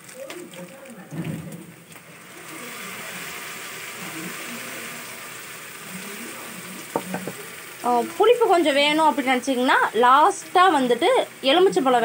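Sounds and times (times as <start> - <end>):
puree pouring: 0.0 - 9.2
sizzling in a wok: 1.6 - 12.0.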